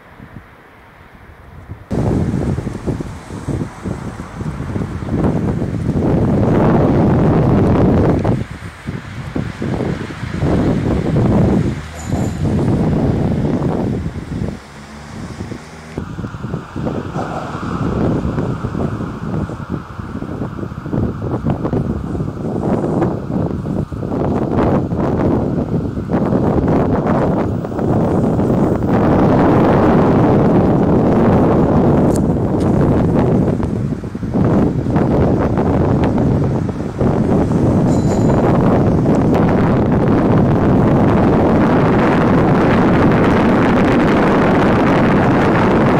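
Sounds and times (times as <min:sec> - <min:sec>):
wind buffeting microphone: 0:00.0 - 0:45.9.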